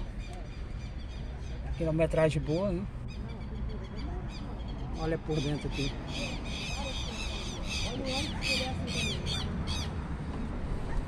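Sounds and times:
bird high calls: 3.0 - 10.0.

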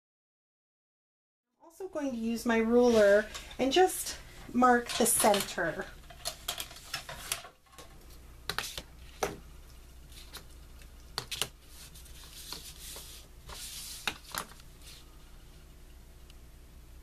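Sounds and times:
ruler sliding rustle: 2.7 - 3.6, 6.3 - 7.5, 11.3 - 15.0.

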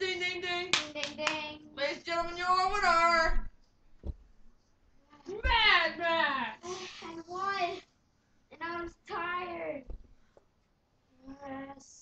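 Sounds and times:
sharp claps: 0.7 - 1.5.

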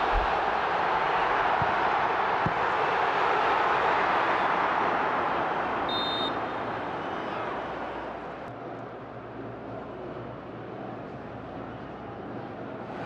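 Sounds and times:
stadium crowd noise: 0.0 - 13.0
short high whistle: 5.9 - 6.4.

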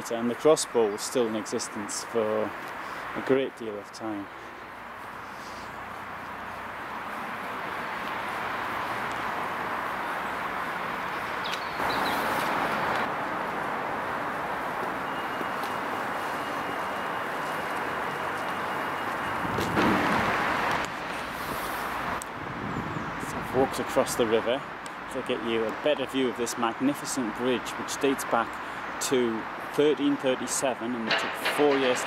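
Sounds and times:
passing vehicles hissing: 0.0 - 32.0.

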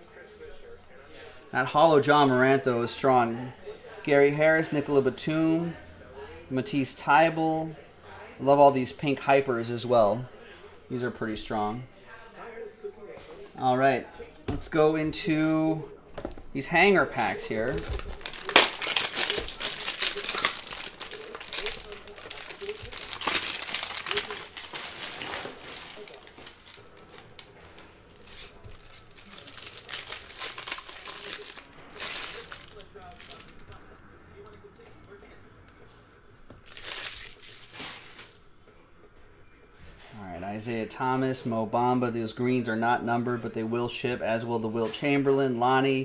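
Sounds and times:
wrappers crinkling: 17.1 - 33.8, 36.6 - 38.4
card packs tearing open: 17.5 - 33.7, 36.6 - 38.3.

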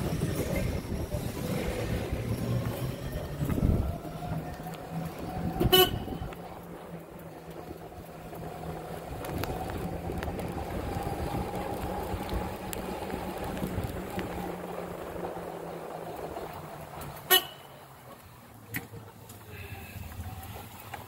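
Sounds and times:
golf cart driving on concrete: 0.0 - 21.0.

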